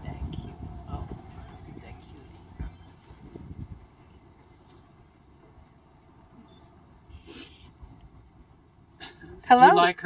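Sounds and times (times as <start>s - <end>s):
steady low rumble: 0.0s - 10.0s
faint high chirp: 6.3s - 8.1s.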